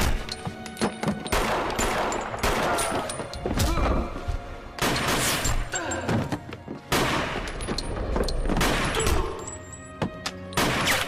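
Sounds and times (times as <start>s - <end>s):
loud gunshots with echo: 1.3s - 3.0s, 10.6s - 11.0s.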